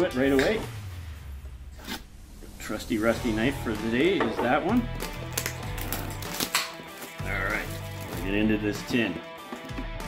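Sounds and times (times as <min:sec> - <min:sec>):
background music: 0:00.0 - 0:10.0
knife cutting plastic wrapping: 0:05.0 - 0:08.6.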